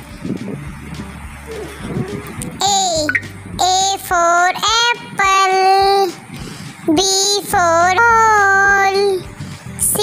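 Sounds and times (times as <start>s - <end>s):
child singing: 1.5s - 6.3s, 6.9s - 10.0s.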